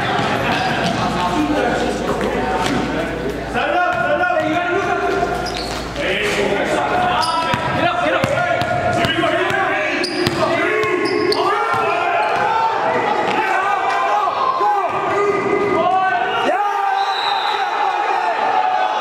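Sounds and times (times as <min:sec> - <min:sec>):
players' voices echoing: 0:00.0 - 0:19.0.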